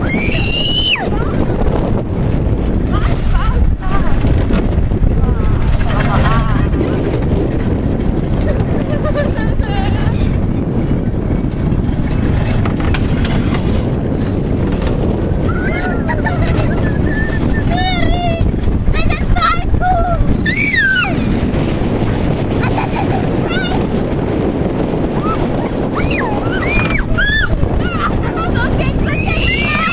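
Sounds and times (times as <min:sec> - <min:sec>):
wind rumble on microphone: 0:00.0 - 0:29.9.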